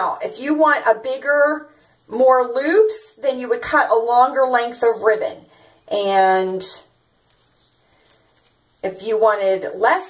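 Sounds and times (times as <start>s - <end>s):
woman speaking: 0.0s - 6.9s, 8.8s - 10.0s
ribbon crinkling and ticking: 7.1s - 8.8s.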